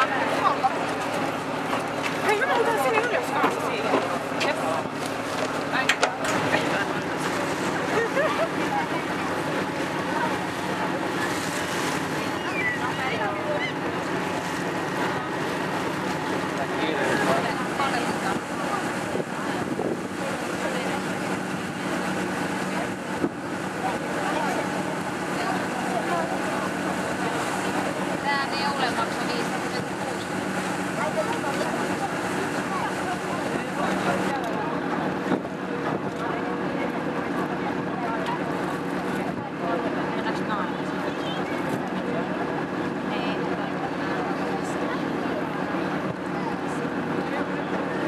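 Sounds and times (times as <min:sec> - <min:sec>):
ferry engine droning: 0:00.0 - 0:48.0
passengers chattering: 0:00.0 - 0:48.0
water rushing past hull: 0:00.0 - 0:48.0
wind on microphone: 0:18.3 - 0:20.3.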